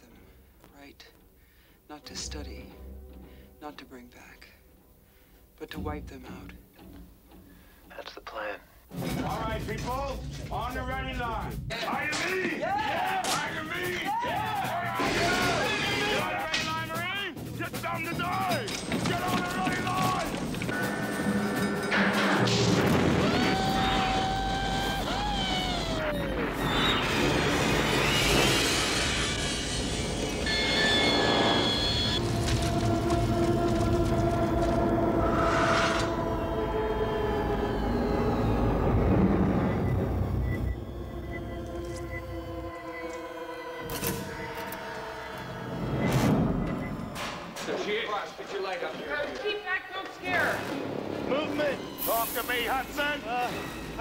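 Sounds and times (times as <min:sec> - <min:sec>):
dramatic music: 0:08.9 - 0:47.6
booms and impacts: 0:22.0 - 0:24.3
indistinct voices: 0:23.2 - 0:28.4.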